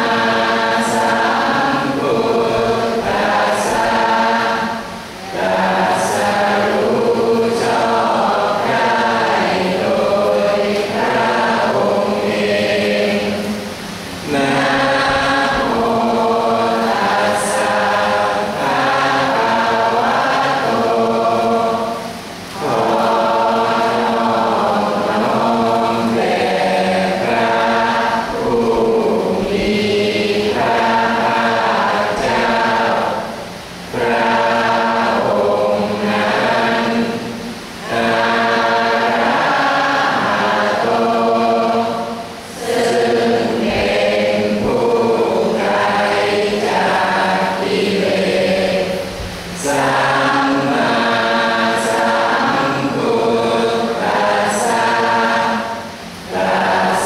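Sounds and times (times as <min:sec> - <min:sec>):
group chanting: 0:00.0 - 0:57.0.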